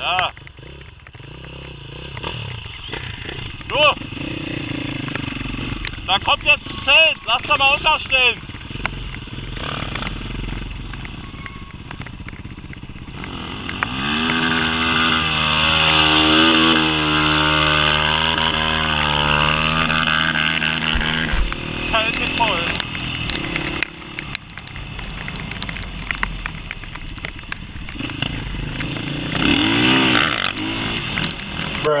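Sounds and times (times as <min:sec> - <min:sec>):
motorcycle engine revving: 0:00.0 - 0:32.0.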